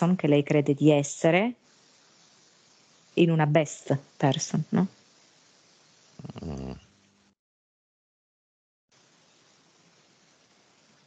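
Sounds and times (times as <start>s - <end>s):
faint hiss: 0.0s - 7.4s, 8.9s - 11.0s
person murmuring: 6.2s - 6.8s.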